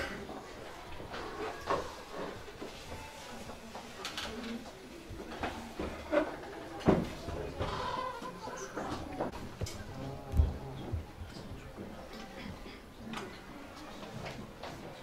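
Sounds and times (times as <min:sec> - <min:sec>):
scattered voices: 0:03.3 - 0:15.0.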